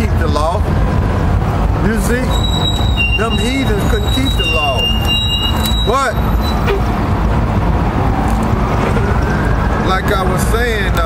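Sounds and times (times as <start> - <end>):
passing vehicle whine: 0.0 - 11.0
street traffic rumble: 0.0 - 11.0.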